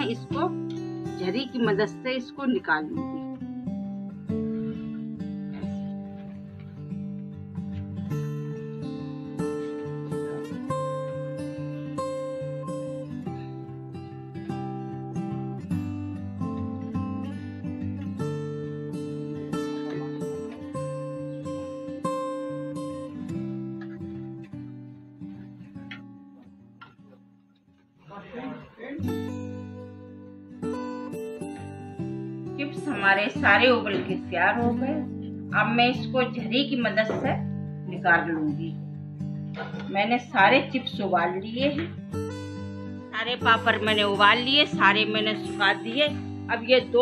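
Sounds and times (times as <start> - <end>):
acoustic guitar playing: 0.0 - 47.0.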